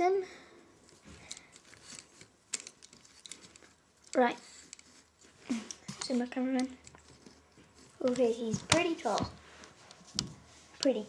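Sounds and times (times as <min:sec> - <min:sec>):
plastic toy parts clicking: 0:01.3 - 0:04.9.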